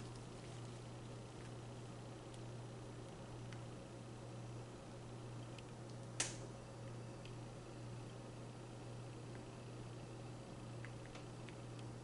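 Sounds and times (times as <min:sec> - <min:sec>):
sharp click: 0:06.2 - 0:06.4.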